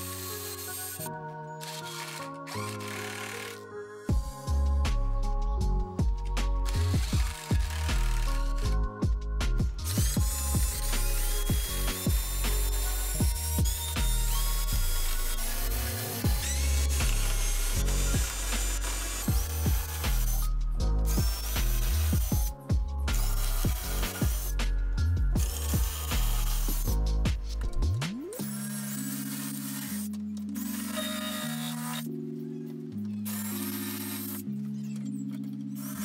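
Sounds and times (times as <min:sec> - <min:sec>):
cordless drill driving screws: 0:00.0 - 0:03.6, 0:06.6 - 0:08.8, 0:09.8 - 0:22.5, 0:23.1 - 0:24.6, 0:25.4 - 0:27.0, 0:28.4 - 0:32.1, 0:33.2 - 0:34.5, 0:35.3 - 0:36.0
background music: 0:00.0 - 0:36.0.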